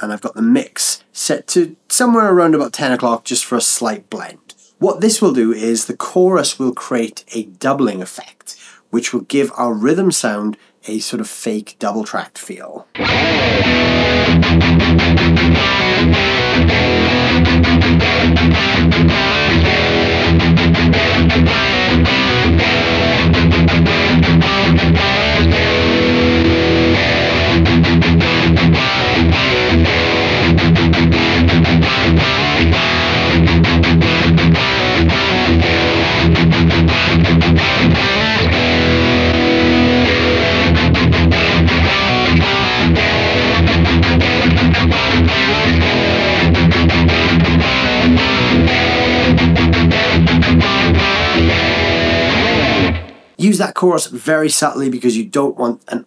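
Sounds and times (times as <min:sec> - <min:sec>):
distorted electric guitar riffs: 0:12.8 - 0:53.4.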